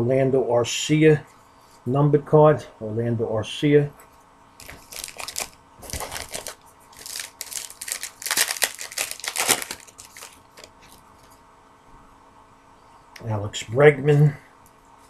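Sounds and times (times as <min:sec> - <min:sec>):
wrapper crinkling and tearing: 0:04.6 - 0:11.0.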